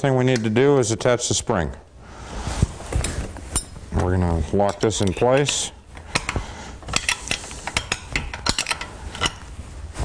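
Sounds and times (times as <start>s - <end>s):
metal parts clinking: 4.6s - 9.4s.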